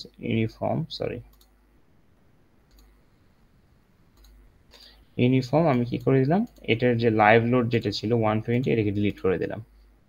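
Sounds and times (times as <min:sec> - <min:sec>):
computer mouse clicks: 0:01.3 - 0:01.6, 0:02.6 - 0:03.0, 0:04.1 - 0:04.9, 0:05.7 - 0:06.8.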